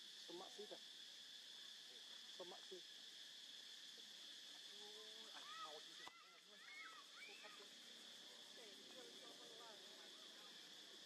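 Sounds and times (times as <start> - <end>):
insect chorus buzzing: 0.0 - 11.0.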